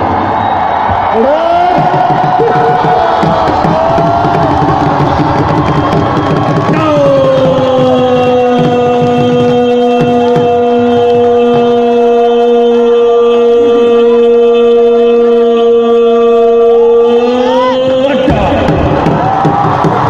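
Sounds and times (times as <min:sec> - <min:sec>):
loud music with drum beat: 0:00.0 - 0:13.8, 0:17.2 - 0:20.0
crowd noise: 0:00.0 - 0:20.0
long held voice: 0:11.3 - 0:18.2.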